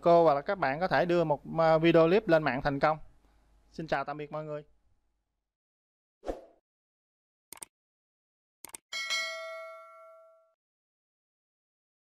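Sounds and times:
notification bell ding: 9.0 - 10.6.

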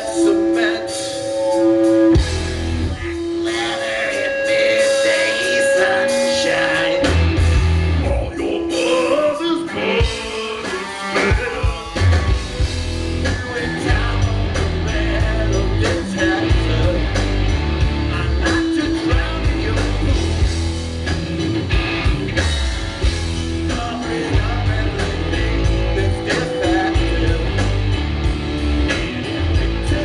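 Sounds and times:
drum kit: 0.0 - 9.3, 9.9 - 30.0
bass: 0.0 - 30.0
distorted electric guitars: 0.0 - 30.0.

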